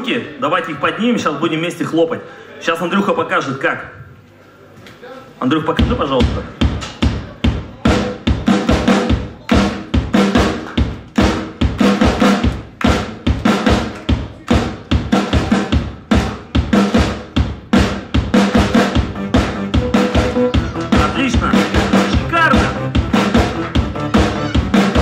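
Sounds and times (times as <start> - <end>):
drum kit playing beat: 5.8 - 25.0
hands clapping: 9.4 - 14.8, 22.5 - 25.0.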